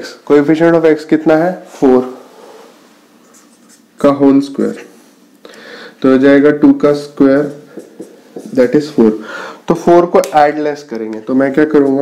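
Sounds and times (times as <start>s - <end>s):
marker pen squeaking on whiteboard: 3.2s - 4.0s, 7.5s - 8.8s.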